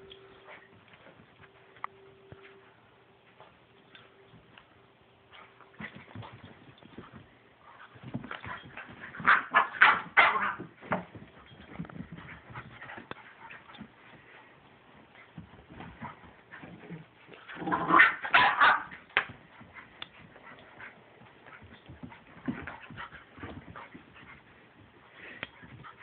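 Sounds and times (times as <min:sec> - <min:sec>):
paws scuffling on blankets: 0:00.0 - 0:26.0
puppies barking and growling: 0:17.5 - 0:19.1.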